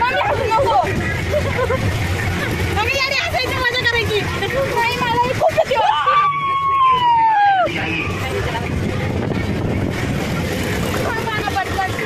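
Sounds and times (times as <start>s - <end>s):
faint voices: 0.0s - 12.0s
steady rushing noise: 0.0s - 12.0s
girl screaming: 5.8s - 7.7s.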